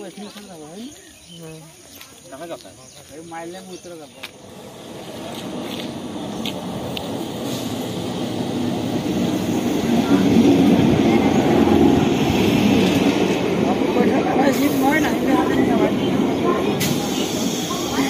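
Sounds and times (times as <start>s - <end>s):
people's voices: 0.0s - 18.0s
train wheels rumbling on rails: 3.4s - 18.0s.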